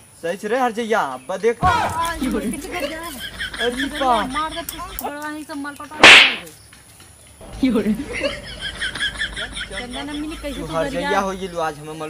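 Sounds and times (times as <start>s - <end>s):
loud slap: 6.0s - 6.5s.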